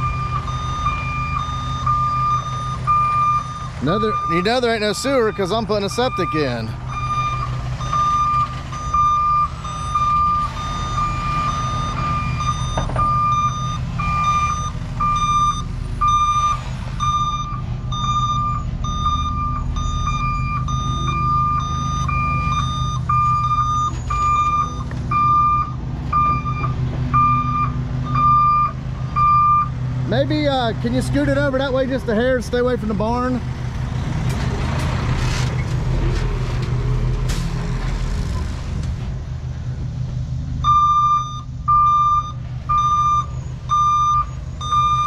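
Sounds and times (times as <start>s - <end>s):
truck backup alarm beeping: 0.0s - 33.4s, 40.6s - 45.0s
diesel engine rumble: 0.0s - 45.0s.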